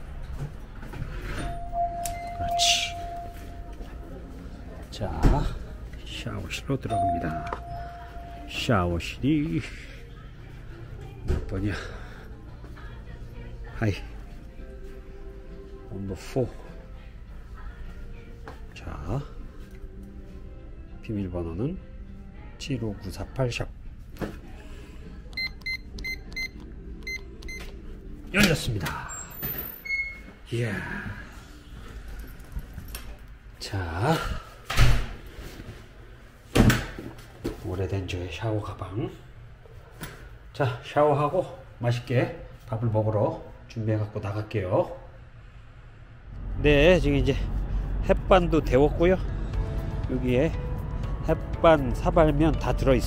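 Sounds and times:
door alarm tone: 0:01.4 - 0:03.7
keypad lock beeps: 0:01.5 - 0:03.3, 0:25.4 - 0:27.7.

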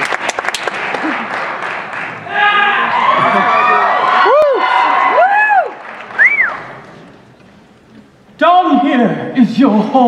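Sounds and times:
audience applauding and cheering: 0:00.0 - 0:07.2
whoops: 0:02.3 - 0:06.7.

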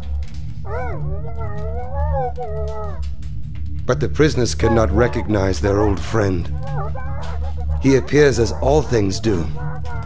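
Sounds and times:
steady low drone: 0:00.0 - 0:10.0
wordless voice-like wail: 0:00.7 - 0:03.0, 0:04.4 - 0:10.0.

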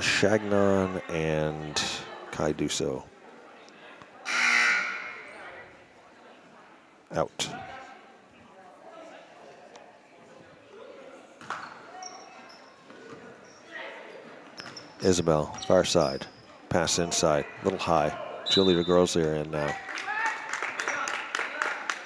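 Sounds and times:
gym crowd hubbub: 0:00.0 - 0:22.0
horn or buzzer: 0:04.3 - 0:05.2.

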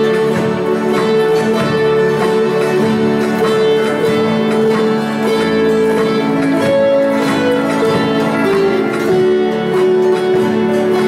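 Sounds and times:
acoustic guitars strummed: 0:00.0 - 0:11.0
country string band playing: 0:00.0 - 0:11.0.

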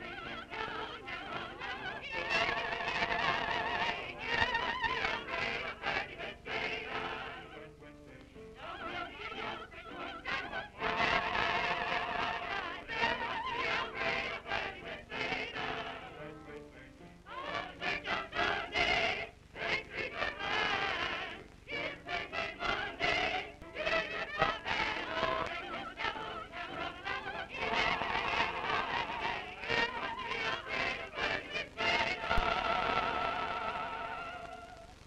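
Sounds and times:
choir singing with vibrato: 0:00.0 - 0:35.0.

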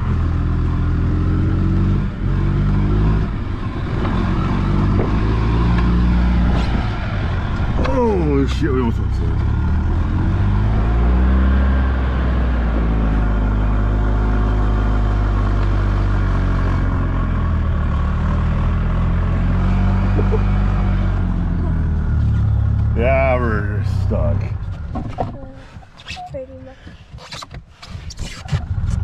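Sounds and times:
golf cart engine running: 0:20.0 - 0:25.7.

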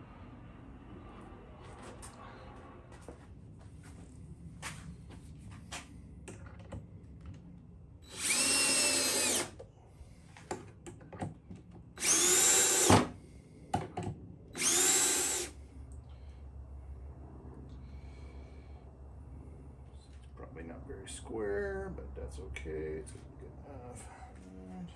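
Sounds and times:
cordless drill driving screws: 0:08.0 - 0:09.6, 0:12.0 - 0:13.2, 0:14.6 - 0:15.5.

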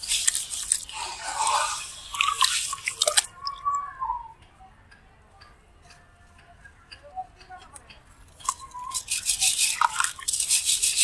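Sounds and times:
water drips: 0:00.0 - 0:04.5, 0:07.4 - 0:11.0.

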